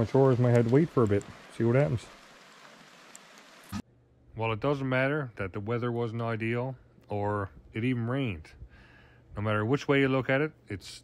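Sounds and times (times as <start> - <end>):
steady rain falling: 0.0 - 3.8.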